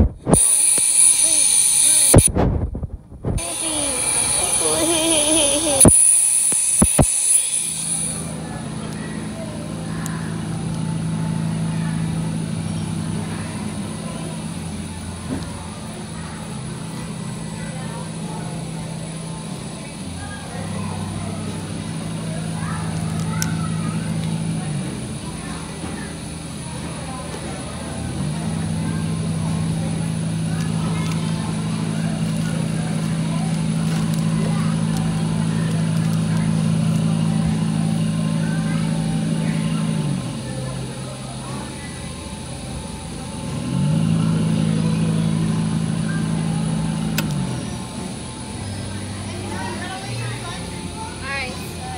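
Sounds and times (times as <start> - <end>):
electric motor humming: 0.0 - 2.3, 3.2 - 8.8, 42.0 - 51.9
turntable motor humming: 0.0 - 17.5, 18.1 - 51.9
faint voices: 0.0 - 51.9
sharp click: 47.1 - 47.4.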